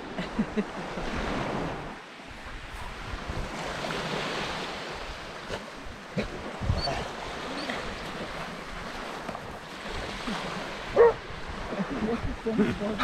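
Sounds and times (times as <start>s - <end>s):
waves washing onto sand: 0.0s - 13.0s.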